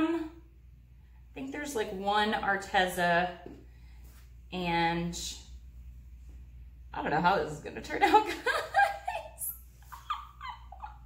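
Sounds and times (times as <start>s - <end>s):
woman giggling: 8.1s - 11.0s.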